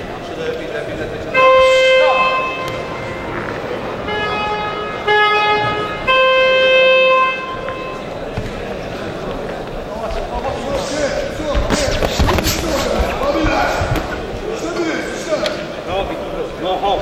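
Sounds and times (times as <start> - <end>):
horn blasts: 1.3 - 8.4.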